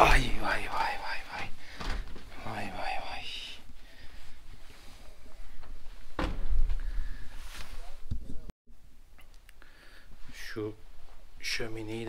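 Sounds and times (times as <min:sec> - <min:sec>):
soft thump: 0:06.2 - 0:06.8.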